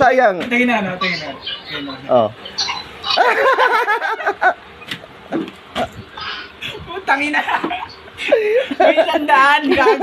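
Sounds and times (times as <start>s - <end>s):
person laughing breathily: 8.2s - 8.9s.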